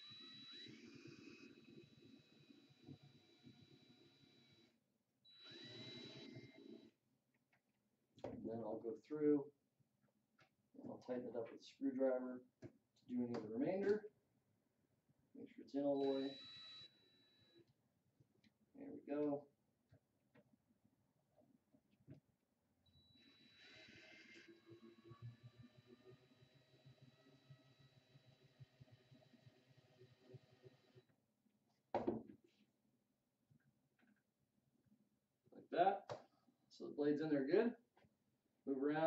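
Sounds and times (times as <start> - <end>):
cordless drill whining: 0.0 - 6.9, 15.9 - 17.7, 22.9 - 31.0.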